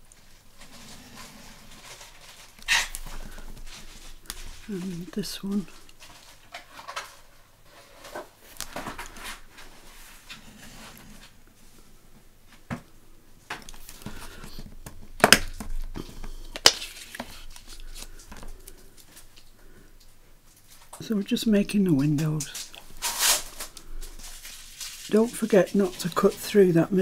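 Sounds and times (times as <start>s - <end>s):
paper rustling: 0.0s - 11.4s, 13.6s - 19.8s, 20.5s - 27.0s.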